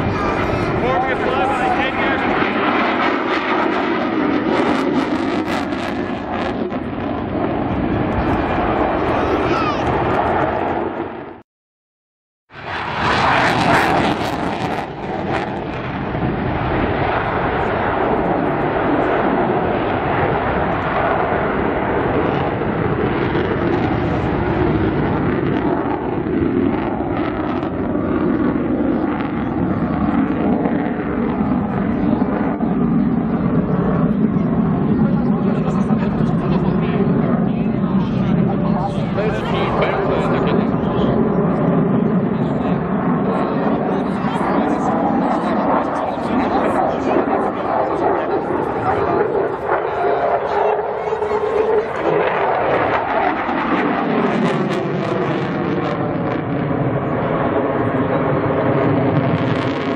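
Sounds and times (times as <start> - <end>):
jet engine roaring: 0.0 - 11.4, 12.5 - 59.9.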